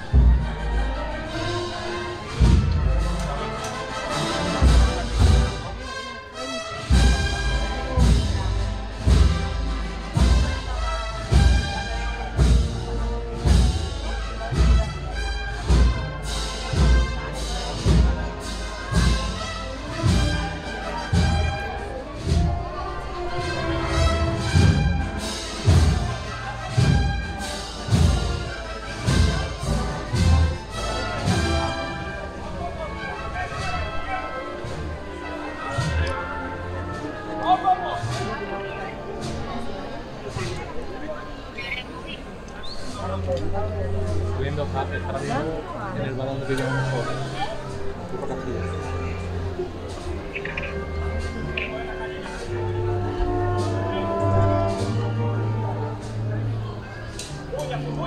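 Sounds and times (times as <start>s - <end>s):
wind band playing a march: 0.0s - 58.0s.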